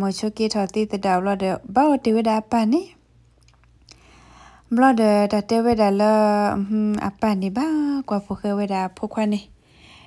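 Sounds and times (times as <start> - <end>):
person narrating: 4.7 - 9.5.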